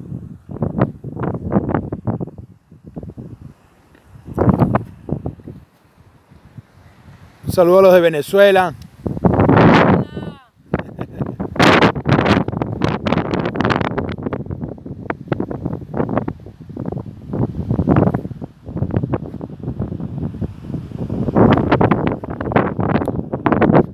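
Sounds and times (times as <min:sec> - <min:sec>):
wind buffeting microphone: 0:00.0 - 0:23.9.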